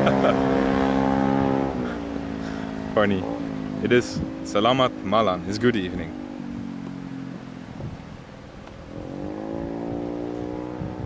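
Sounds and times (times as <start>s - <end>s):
car engine idling: 0.0s - 10.8s.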